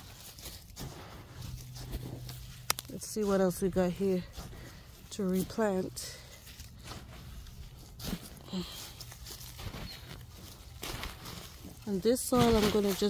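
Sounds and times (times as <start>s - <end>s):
hands rustling through soil and leaves: 0.0s - 13.0s.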